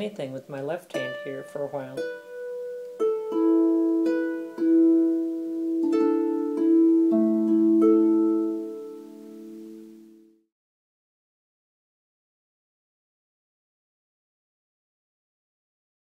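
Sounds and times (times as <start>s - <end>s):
harp notes plucked slowly: 0.9s - 10.3s.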